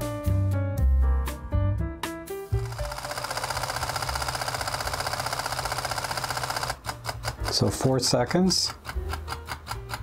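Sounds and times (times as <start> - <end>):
camera shutter rapid clicking: 2.6 - 7.5.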